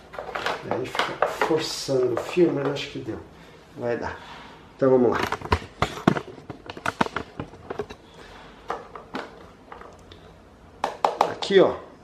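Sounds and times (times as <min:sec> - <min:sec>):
plastic parts clicking: 0:00.1 - 0:02.8, 0:05.2 - 0:08.0.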